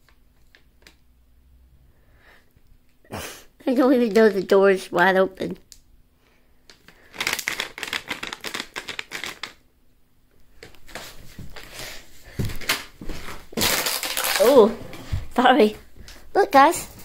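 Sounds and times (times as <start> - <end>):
bag of treats crinkling rattle: 6.7 - 9.6, 13.5 - 14.7.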